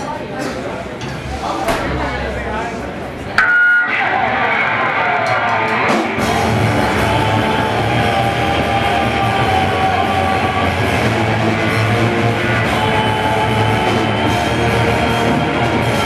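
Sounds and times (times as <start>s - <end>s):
electric guitar: 3.4s - 16.0s
metal band playing: 3.8s - 16.0s.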